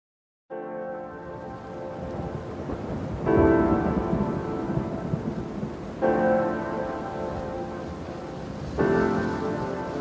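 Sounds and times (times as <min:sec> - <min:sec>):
background music: 0:00.5 - 0:10.0
low rumbling noise: 0:01.4 - 0:10.0.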